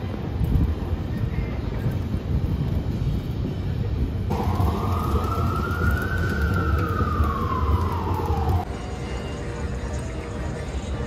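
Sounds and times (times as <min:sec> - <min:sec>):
low rumble of traffic: 0:00.0 - 0:11.0
emergency vehicle siren wailing: 0:04.3 - 0:09.3.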